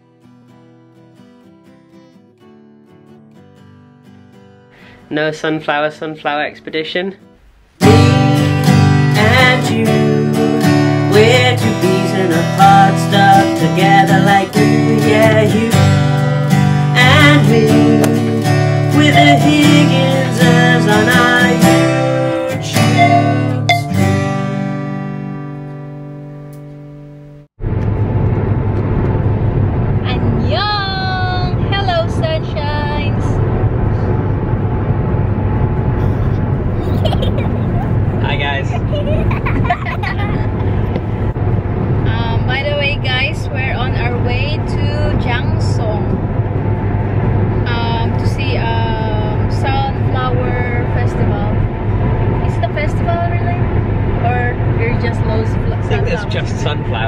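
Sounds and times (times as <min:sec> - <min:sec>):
acoustic guitar theme tune: 0:00.0 - 0:57.0
car engine and road noise: 0:07.3 - 0:57.0.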